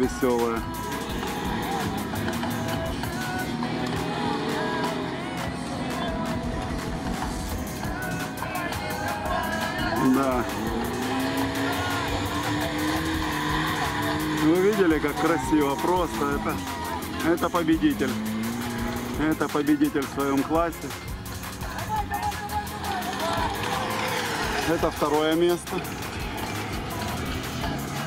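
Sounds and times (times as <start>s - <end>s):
car engines revving: 0.0s - 28.0s
music: 0.0s - 28.0s.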